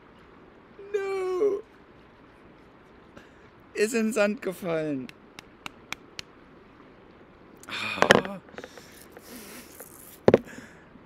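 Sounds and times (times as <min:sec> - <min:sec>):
breathing: 0:03.2 - 0:03.6, 0:07.7 - 0:09.8, 0:10.4 - 0:11.0.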